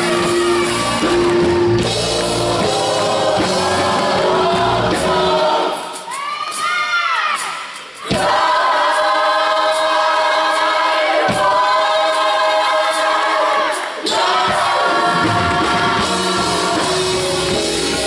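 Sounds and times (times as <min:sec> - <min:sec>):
gospel choir singing with band: 0:00.0 - 0:06.3, 0:07.4 - 0:18.0.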